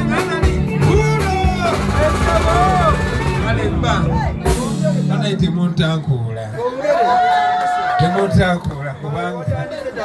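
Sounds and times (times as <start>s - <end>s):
drums: 0.0s - 6.4s
bass line: 0.0s - 6.5s
live band music: 0.0s - 7.4s.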